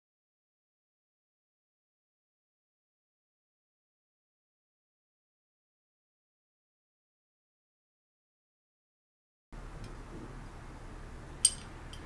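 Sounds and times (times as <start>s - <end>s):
low steady background noise: 9.6s - 12.0s
sharp metallic clink: 11.4s - 12.0s.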